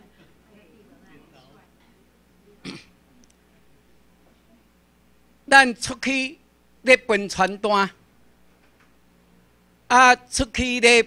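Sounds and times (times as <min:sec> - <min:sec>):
person coughing: 0:02.6 - 0:02.9.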